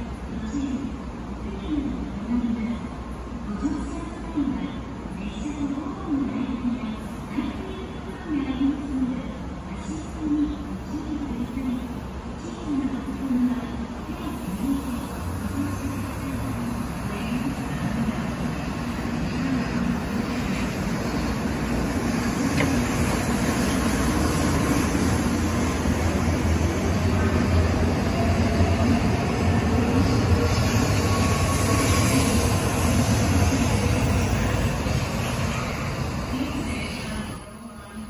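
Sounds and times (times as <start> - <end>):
train wheels rumbling: 15.2 - 37.3.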